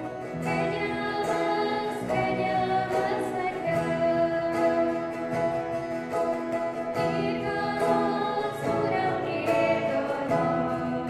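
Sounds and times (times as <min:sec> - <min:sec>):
voices singing a hymn: 0:00.0 - 0:05.4, 0:06.8 - 0:11.0
acoustic guitar: 0:00.0 - 0:11.0
electric bass guitar: 0:00.0 - 0:11.0.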